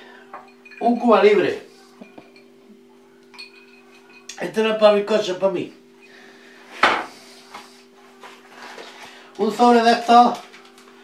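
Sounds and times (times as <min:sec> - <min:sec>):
steady low hum: 0:00.0 - 0:11.0
glass clinking: 0:00.3 - 0:04.6.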